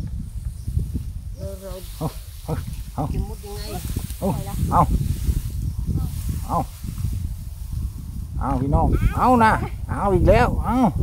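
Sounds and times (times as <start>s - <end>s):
straw rustling and crackling: 0.3s - 8.7s.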